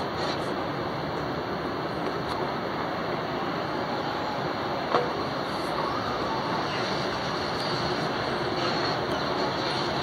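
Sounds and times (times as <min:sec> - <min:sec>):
train station hall noise: 0:00.0 - 0:10.0.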